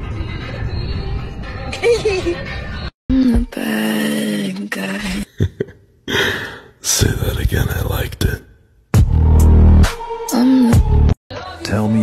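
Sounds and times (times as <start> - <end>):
person gasping: 6.1 - 6.8.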